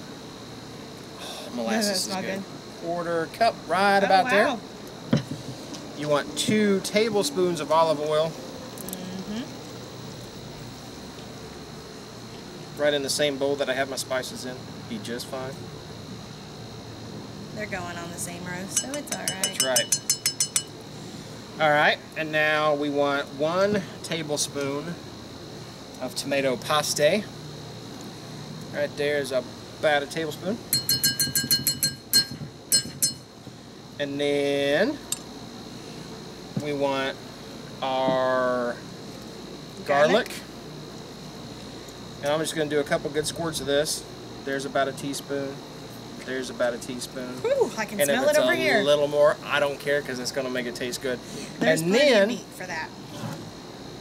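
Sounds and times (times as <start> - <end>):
high-pitched whine: 0.0 - 11.8, 12.8 - 25.4, 28.3 - 33.4, 36.6 - 41.1, 46.3 - 54.0
metal spoon tapping bowl rim: 18.8 - 20.8, 30.7 - 33.2.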